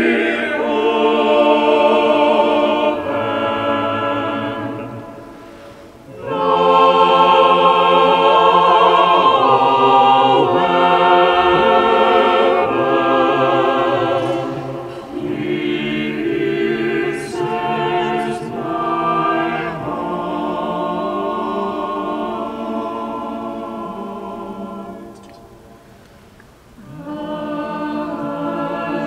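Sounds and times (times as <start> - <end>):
choir singing a hymn: 0.0 - 26.0, 26.7 - 29.0.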